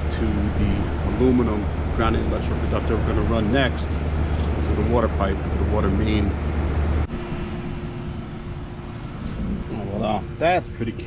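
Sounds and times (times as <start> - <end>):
faint even hum: 0.0 - 11.0
low rumble: 0.0 - 11.0.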